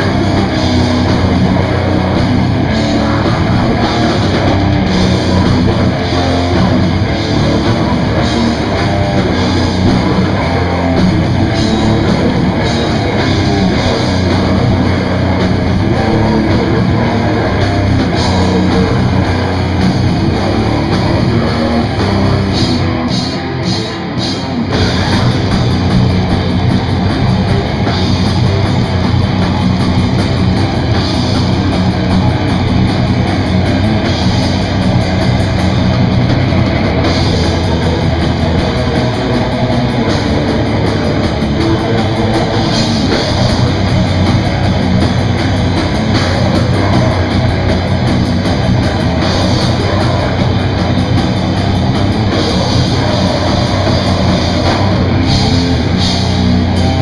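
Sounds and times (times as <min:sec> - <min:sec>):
bass guitar: 0:00.0 - 0:57.0
distorted electric guitars: 0:00.0 - 0:57.0
drum kit: 0:00.0 - 0:57.0.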